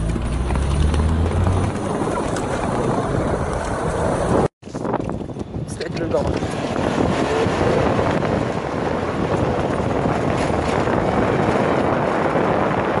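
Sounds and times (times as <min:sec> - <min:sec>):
wind rushing on microphone: 0:00.0 - 0:13.0.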